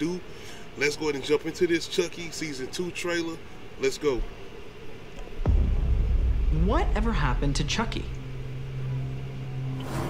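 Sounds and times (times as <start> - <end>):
low steady drone: 0.0 - 10.0.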